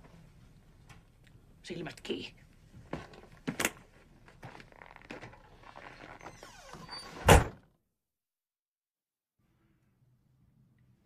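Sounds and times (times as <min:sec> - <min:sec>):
wooden door slamming: 0:07.2 - 0:07.6.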